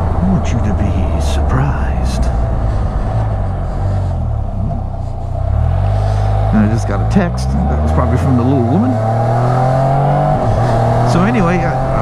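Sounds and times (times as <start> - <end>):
engine running at low revs: 0.0 - 12.0.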